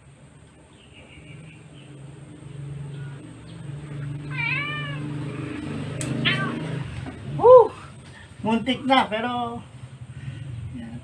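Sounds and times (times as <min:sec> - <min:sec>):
cat meowing: 0:04.2 - 0:05.3, 0:06.1 - 0:06.9
claw clipper clicks: 0:06.0 - 0:06.2.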